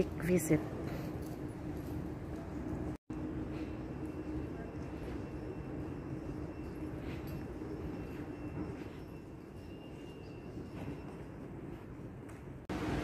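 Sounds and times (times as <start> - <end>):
machinery and ventilation hum: 0.0 - 13.0.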